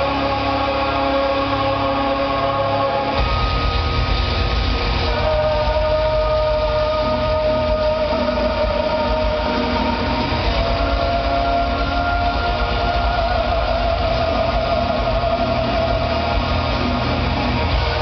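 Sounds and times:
live metal band playing: 0:00.0 - 0:18.0
fast pulsing drum beat: 0:03.1 - 0:18.0.

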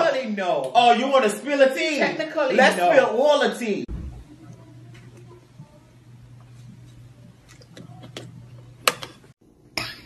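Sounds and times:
low steady hum: 0:03.9 - 0:10.0.

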